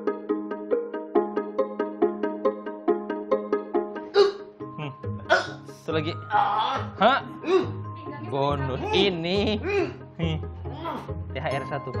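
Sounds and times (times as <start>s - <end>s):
background music: 0.0s - 12.0s
person gasping and crying out: 4.1s - 5.6s, 6.3s - 7.8s, 9.6s - 10.0s.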